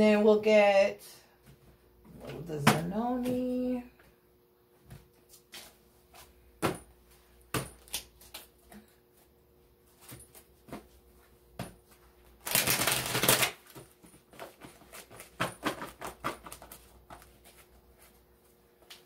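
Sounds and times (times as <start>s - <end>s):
cards shuffling: 12.4s - 17.7s
cards tapping and clicking: 12.5s - 17.3s.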